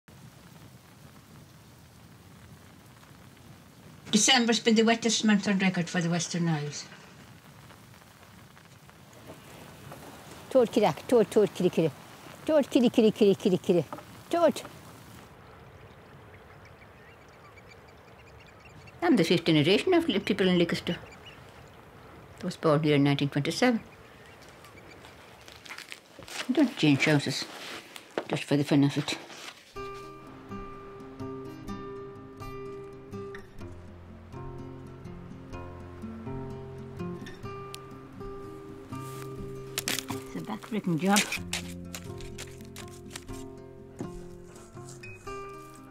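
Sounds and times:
steady rain falling: 0.0s - 45.9s
distant bird calls: 13.8s - 22.6s, 23.3s - 25.7s.

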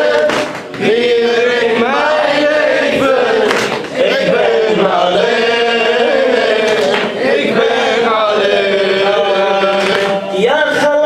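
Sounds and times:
man chanting into a microphone: 8.0s - 11.0s.

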